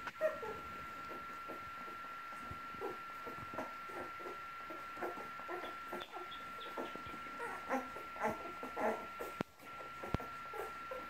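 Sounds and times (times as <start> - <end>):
puppies squeaking and whimpering: 2.8 - 11.0.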